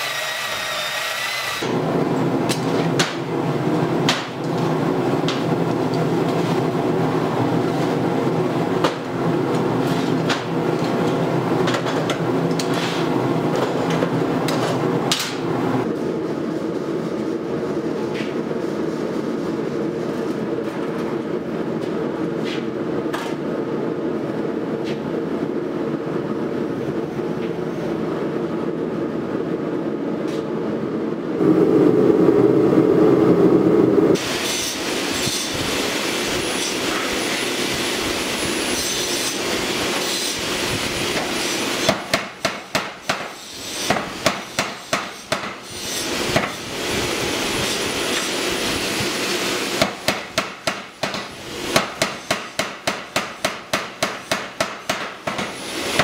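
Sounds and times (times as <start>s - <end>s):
bandsaw cutting steel: 0.0s - 1.7s
gas forge burning: 0.0s - 29.5s, 30.2s - 56.0s.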